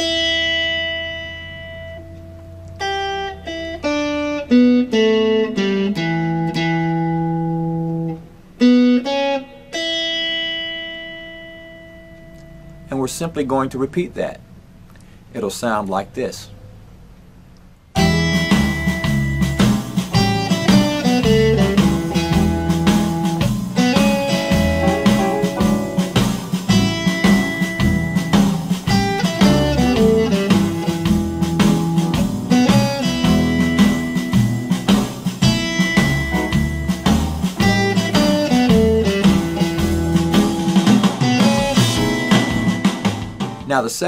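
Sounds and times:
electric guitar blues riff: 0.0s - 14.3s, 18.0s - 43.7s
blues backing track with bass: 0.0s - 16.0s, 16.6s - 43.7s.

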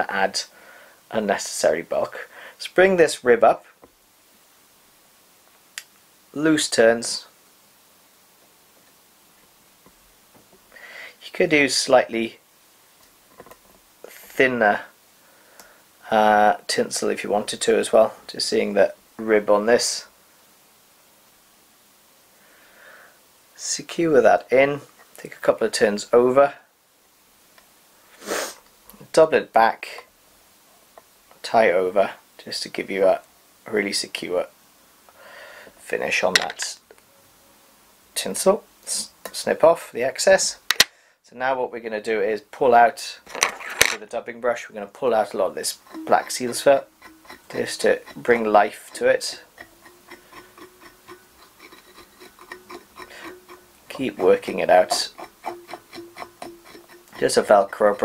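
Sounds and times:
person sniffing: 28.1s - 28.6s, 53.1s - 53.4s.

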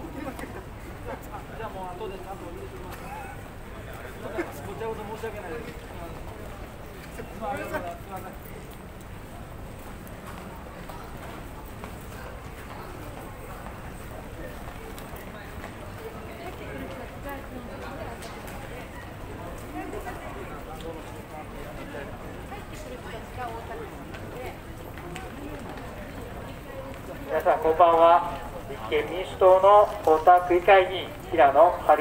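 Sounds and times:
street noise: 0.0s - 32.0s
traffic rumble: 0.0s - 32.0s.

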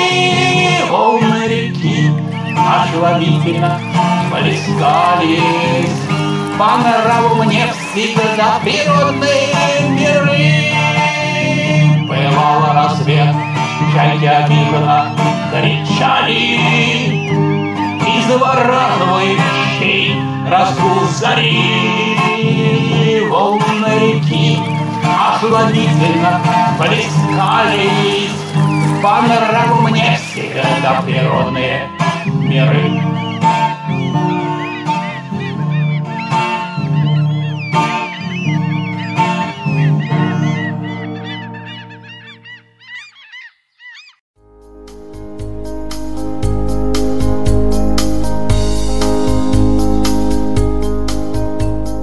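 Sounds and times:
man singing: 0.0s - 33.6s
acoustic guitar strumming: 0.0s - 42.1s, 44.4s - 52.0s
keyboard music: 0.0s - 42.9s, 44.4s - 52.0s
gulls calling: 0.0s - 44.3s, 46.4s - 52.0s.

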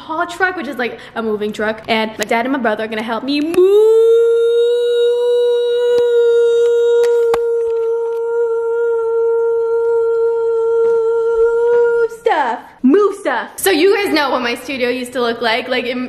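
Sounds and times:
woman singing long high note: 3.6s - 12.3s.

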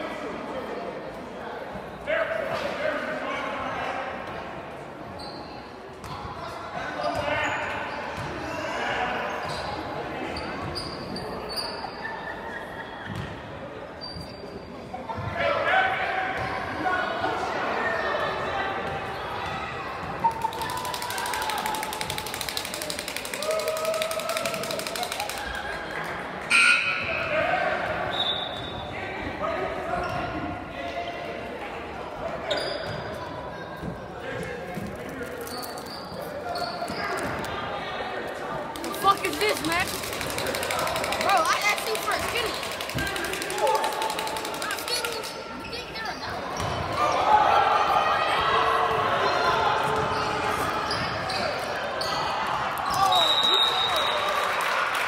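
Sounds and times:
echoing indistinct voices: 36.8s - 53.3s.

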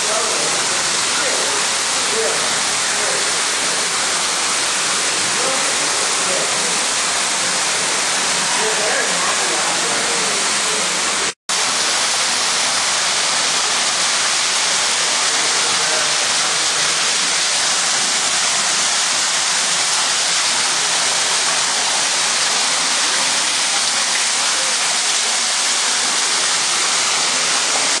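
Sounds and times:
waterfall rushing: 0.0s - 28.0s.

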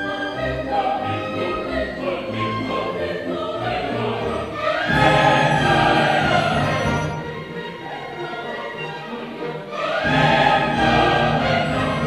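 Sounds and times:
opera chorus singing: 0.0s - 12.0s
orchestra playing: 0.0s - 12.0s.

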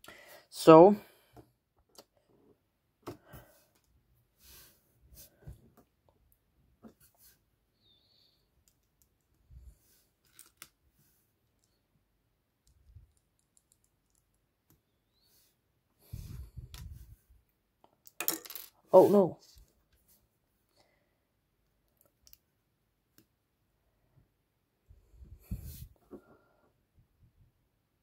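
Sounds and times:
plastic bricks clicking together: 12.6s - 14.4s.

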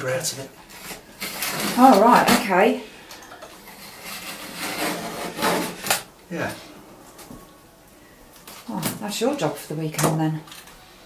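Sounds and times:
tool scraping sealant from tiles: 3.6s - 6.0s.

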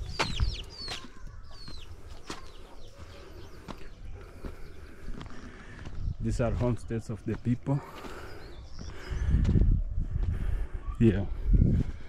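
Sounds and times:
chick peeping: 0.0s - 6.0s.

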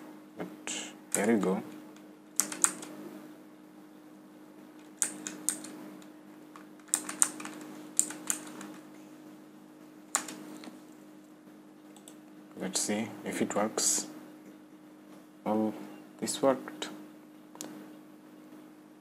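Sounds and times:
faint steady hum: 0.0s - 19.0s
keyboard keys typing: 2.4s - 2.9s, 4.8s - 5.8s, 6.6s - 8.9s, 10.1s - 10.7s.

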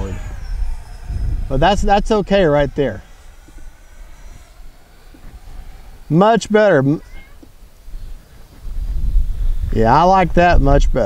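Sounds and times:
low rumble: 0.0s - 6.2s
electric ducted fan whine: 0.0s - 11.0s.

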